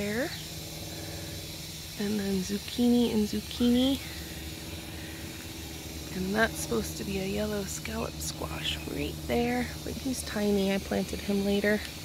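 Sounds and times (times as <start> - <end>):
faint steady tone: 0.0 - 12.0
low hum and hiss: 0.0 - 12.0.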